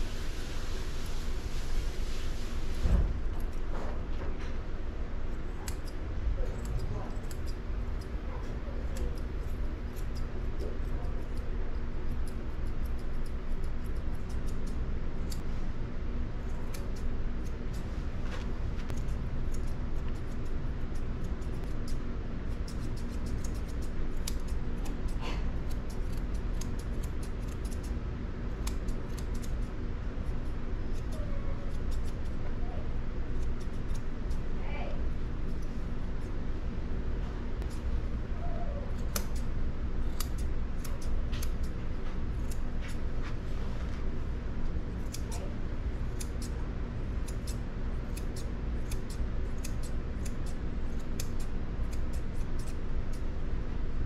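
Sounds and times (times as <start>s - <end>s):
grooming shears snipping hair: 0.0s - 54.0s
steady low hum: 0.0s - 54.0s.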